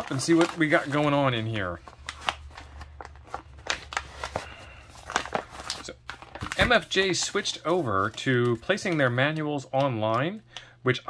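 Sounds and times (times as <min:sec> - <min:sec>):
plastic bag crinkling: 0:00.0 - 0:09.1.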